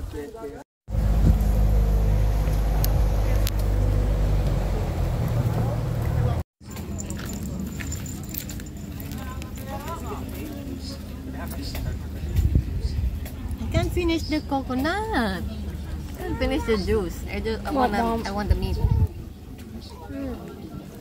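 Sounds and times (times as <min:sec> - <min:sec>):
boat engine droning: 0:00.9 - 0:12.3
voices: 0:02.3 - 0:21.0.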